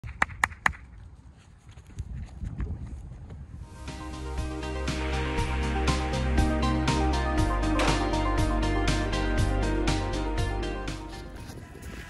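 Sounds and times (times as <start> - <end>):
sharp hand claps: 0.0 - 0.8.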